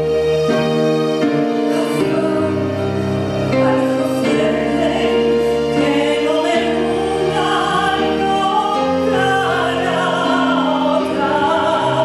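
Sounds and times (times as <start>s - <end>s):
musical accompaniment: 0.0s - 12.0s
woman singing into microphone: 3.6s - 12.0s.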